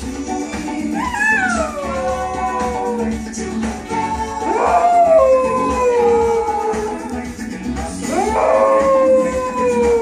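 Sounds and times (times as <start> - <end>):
pop music: 0.0 - 10.0
small dog howling: 1.0 - 3.1, 4.4 - 7.0, 8.1 - 10.0.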